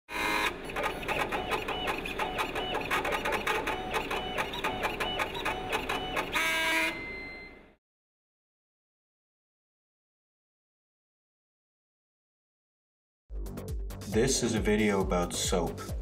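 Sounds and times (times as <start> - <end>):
laser cutter stepper motors whining: 0.1 - 7.7.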